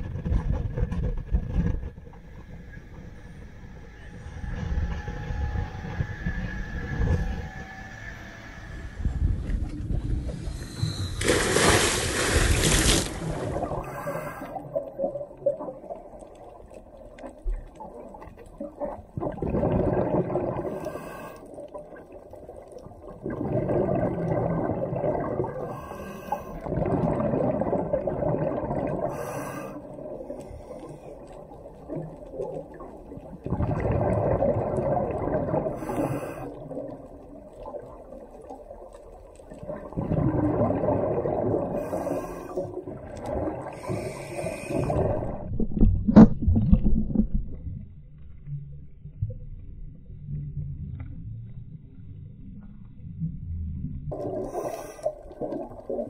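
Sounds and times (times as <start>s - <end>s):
underwater bubbling exhalations: 17.7s - 26.0s, 26.6s - 30.5s, 31.3s - 38.9s, 39.5s - 47.6s, 54.1s - 56.0s.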